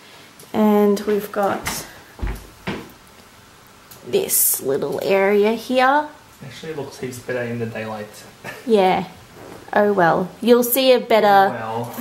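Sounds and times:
soft knocks: 1.7 - 2.9.

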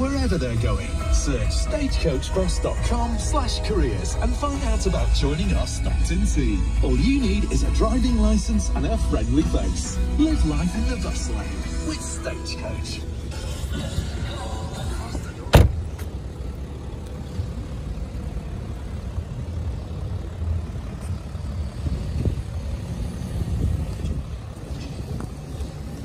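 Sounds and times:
car door shutting: 15.0 - 16.2
wind buffeting microphone: 21.2 - 26.0.

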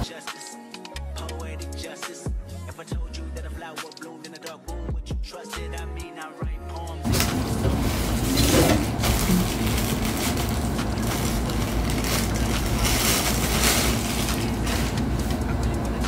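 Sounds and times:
plastic packaging crinkling: 7.1 - 15.6
steady low hum: 7.1 - 16.0.

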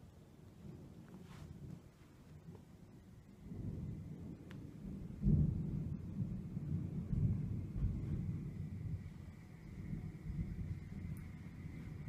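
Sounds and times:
low rumbling handling noise on microphone: 0.6 - 2.9, 3.6 - 12.0.

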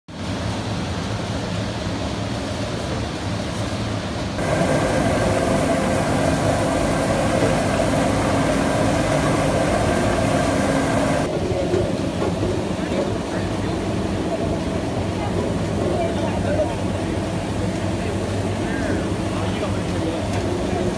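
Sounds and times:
machinery motor hum: 4.4 - 11.3.

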